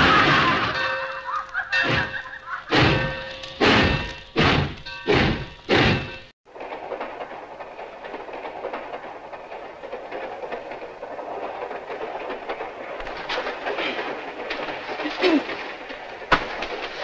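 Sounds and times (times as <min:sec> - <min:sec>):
train wheels clickety-clack: 0:00.1 - 0:17.0.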